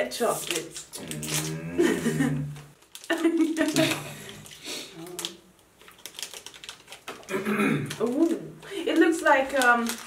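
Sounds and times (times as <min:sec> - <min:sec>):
plastic wrapper crinkling: 0:00.0 - 0:10.0
person humming: 0:01.0 - 0:02.6
person laughing: 0:01.6 - 0:04.2.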